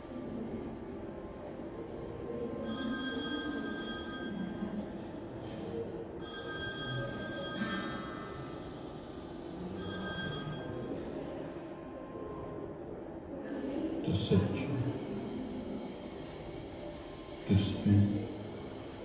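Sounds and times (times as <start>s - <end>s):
high electronic ringing tones: 2.6s - 11.2s.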